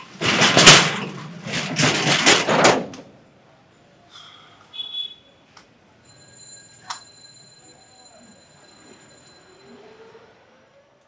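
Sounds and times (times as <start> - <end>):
faint high-pitched ringing: 6.0 - 10.4.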